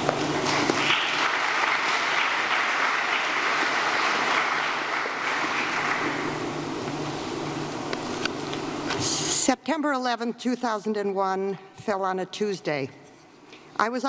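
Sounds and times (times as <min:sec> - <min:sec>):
audience applause: 0:00.0 - 0:06.7.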